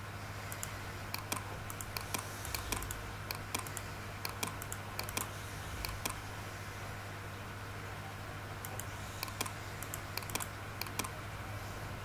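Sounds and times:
steady low hum: 0.0s - 12.0s
clicking of calculator keys: 0.5s - 6.2s, 8.6s - 11.2s.

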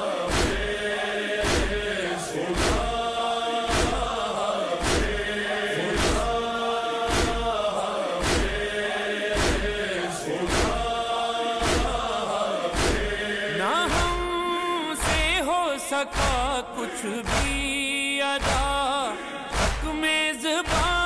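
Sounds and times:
mourners chanting in unison: 0.0s - 19.9s.

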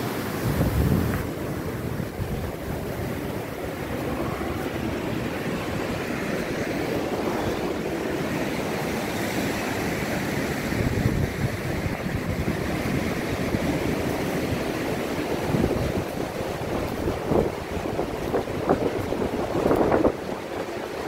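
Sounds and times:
ocean surf rushing: 0.0s - 21.0s
wind buffeting microphone: 0.0s - 21.0s.

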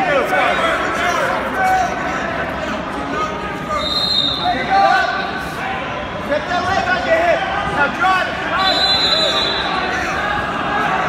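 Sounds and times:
crowd talking and calling out: 0.0s - 11.0s.

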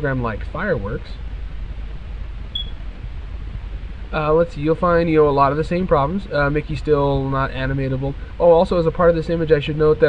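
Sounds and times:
room noise hum and hiss: 0.0s - 10.0s
short high beep: 2.6s - 2.8s.

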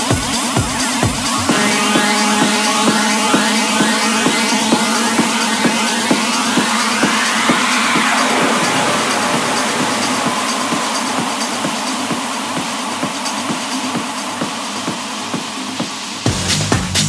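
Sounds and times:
falling synth sweep: 1.2s - 13.7s
wash of noise: 1.2s - 16.2s.

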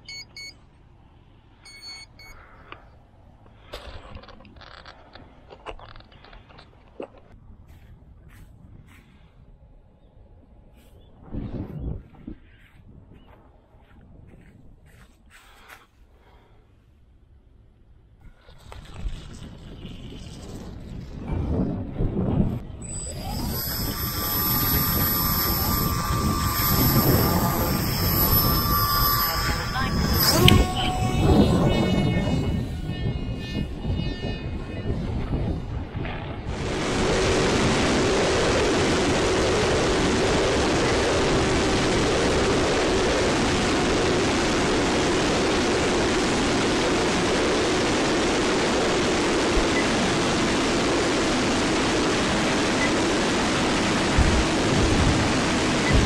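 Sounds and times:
wind noise: 3.6s - 15.4s, 18.2s - 56.0s
electric motor whining: 22.7s - 33.8s.

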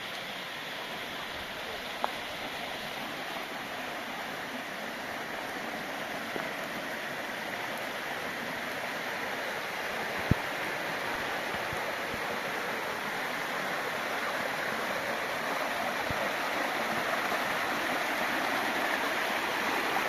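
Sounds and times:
stream rushing: 0.0s - 20.0s.

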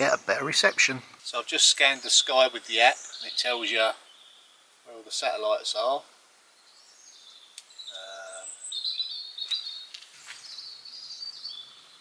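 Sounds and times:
songbirds singing: 0.0s - 12.0s.

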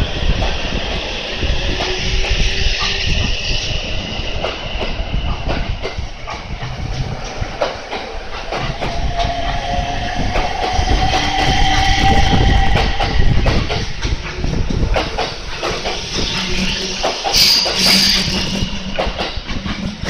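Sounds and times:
train wheels clacking over rail joints: 4.4s - 20.0s.

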